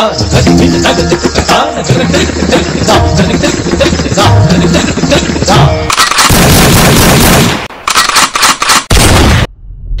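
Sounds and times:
sharp gunshots: 5.9 - 9.5.

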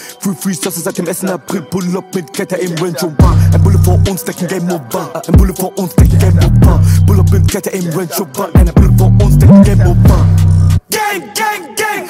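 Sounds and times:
rapping over a beat: 0.0 - 12.0
rapid high beat ticks: 0.4 - 10.6
heavy bass notes: 3.2 - 4.1, 6.0 - 7.5, 8.8 - 10.8.

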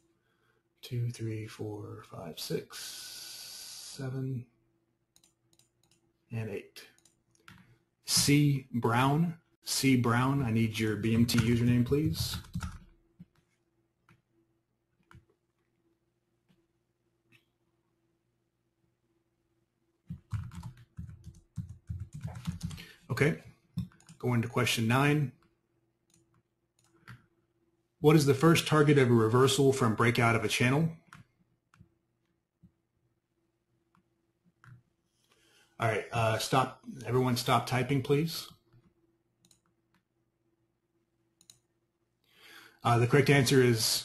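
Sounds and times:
faint steady hum: 0.0 - 44.0
computer keyboard typing: 5.2 - 6.0, 11.1 - 13.4, 20.1 - 23.1, 23.8 - 24.2.

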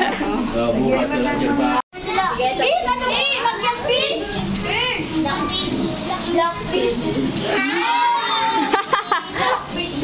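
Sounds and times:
children chattering and calling out: 0.9 - 10.0.

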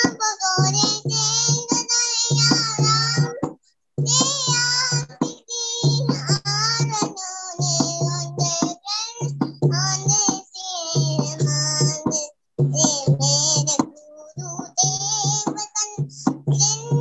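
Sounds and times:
girl singing devotional song: 0.0 - 17.0.

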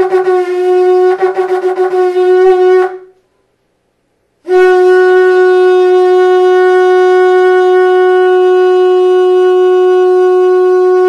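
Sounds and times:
ram's horn blast: 4.4 - 11.0.

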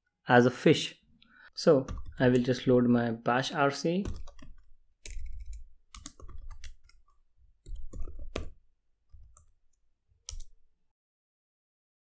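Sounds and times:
computer keyboard typing: 1.8 - 2.6, 4.0 - 10.7.

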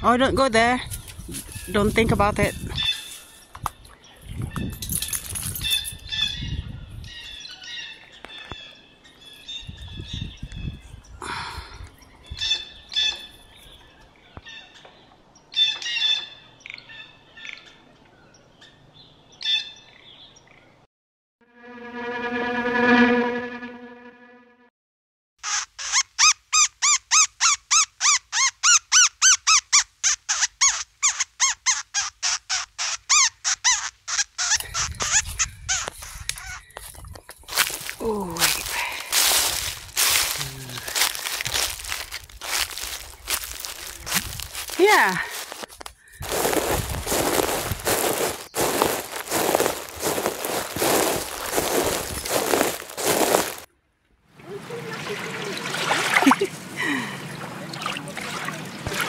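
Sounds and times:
birds chirping: 0.6 - 20.8, 26.9 - 53.6.

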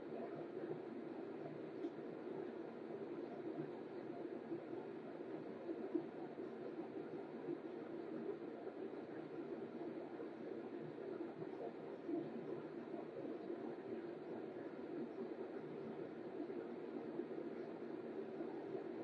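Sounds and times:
low hiss and hum: 0.0 - 19.0.

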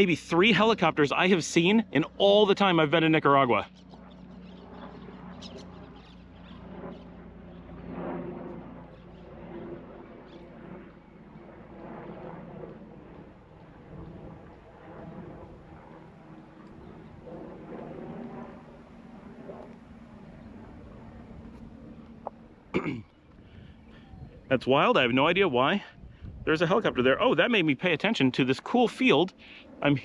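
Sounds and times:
distant helicopter droning: 0.0 - 30.0.

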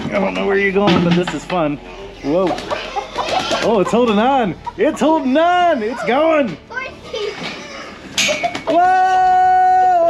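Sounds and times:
chicken wings flapping: 2.6 - 3.7
person crying out: 8.7 - 10.0.

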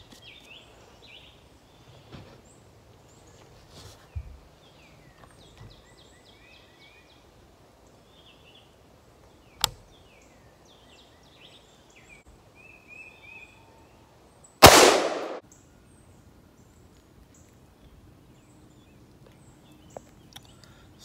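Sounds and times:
birds chirping: 0.0 - 21.0
rifle shot: 14.6 - 15.4.

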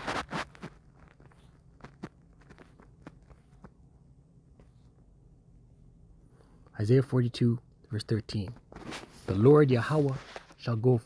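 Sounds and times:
rustling: 0.0 - 3.8
faint clicks and taps: 0.4 - 3.9.

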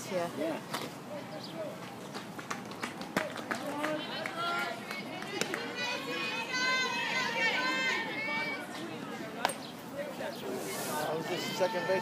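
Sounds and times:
young voices chattering and calling: 3.6 - 12.0.

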